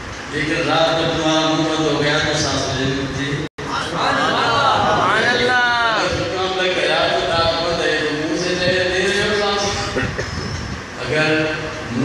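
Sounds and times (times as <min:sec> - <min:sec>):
hall noise: 0:00.0 - 0:12.0
man speaking into a microphone: 0:00.3 - 0:10.4, 0:11.0 - 0:12.0.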